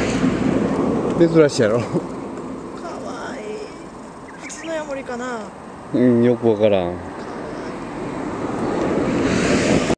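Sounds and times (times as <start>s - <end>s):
steady rushing noise: 0.0s - 9.9s.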